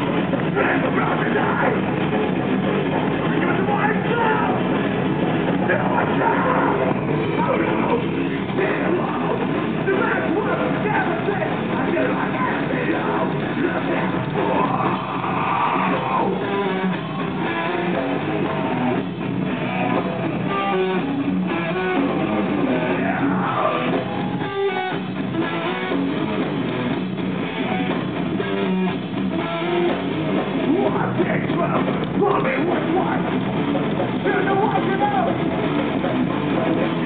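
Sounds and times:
live rock band: 0.0s - 37.0s
strummed electric guitar: 0.0s - 37.0s.

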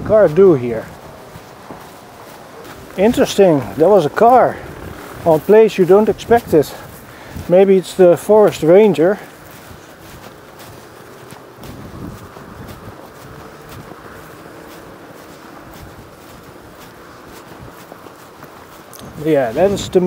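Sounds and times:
footsteps on sand: 0.0s - 20.0s
traffic hum: 0.0s - 20.0s.

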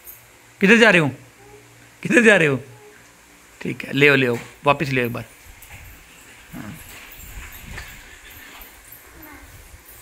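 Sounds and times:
toddler vocal sounds: 1.3s - 1.9s, 2.6s - 3.2s, 9.0s - 9.7s.

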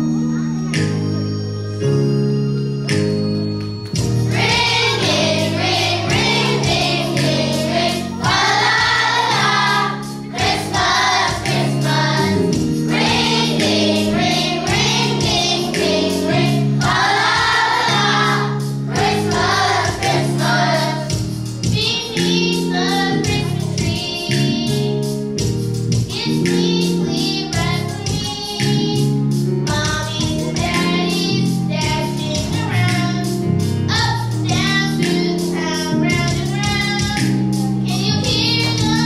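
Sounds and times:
instrumental accompaniment: 0.0s - 39.0s
children's choir singing: 4.3s - 24.6s.

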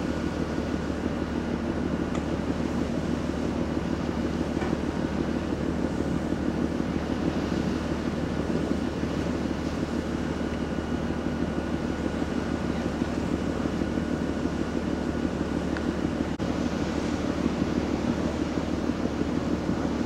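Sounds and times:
ship engines droning: 0.0s - 20.0s.

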